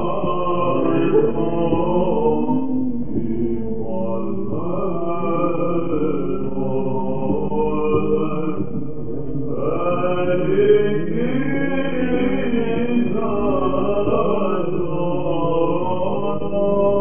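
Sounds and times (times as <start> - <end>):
low held vocal drone: 0.0 - 17.0
men chanting a hymn: 0.0 - 17.0.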